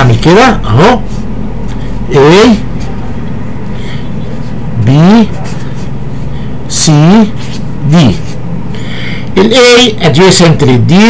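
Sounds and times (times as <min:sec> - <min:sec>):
steady low hum: 0:00.0 - 0:11.0
voice saying a letter: 0:04.8 - 0:05.6, 0:06.7 - 0:08.4.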